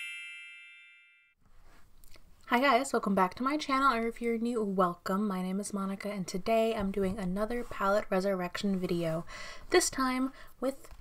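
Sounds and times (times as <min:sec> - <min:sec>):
bell-like logo chime: 0:00.0 - 0:01.4.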